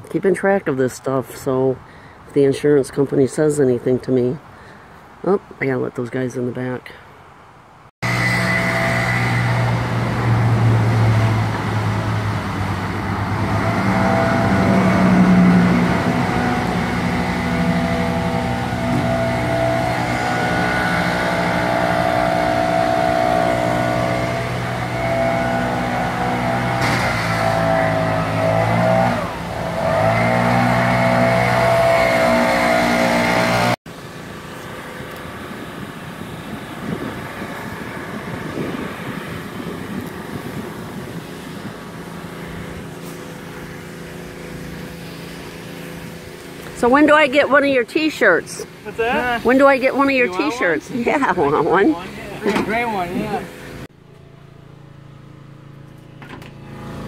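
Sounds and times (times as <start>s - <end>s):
outdoor background: 0.0s - 57.0s
engine running: 8.0s - 57.0s.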